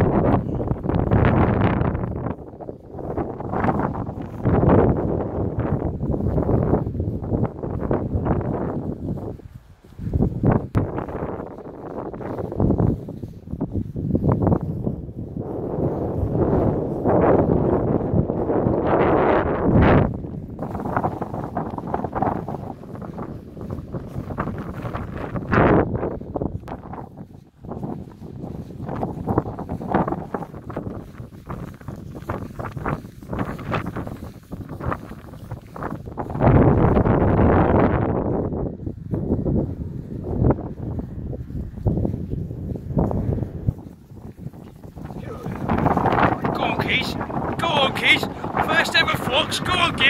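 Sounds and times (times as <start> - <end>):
wind buffeting microphone: 0.0 - 50.0
microphone handling rustles: 41.2 - 47.6.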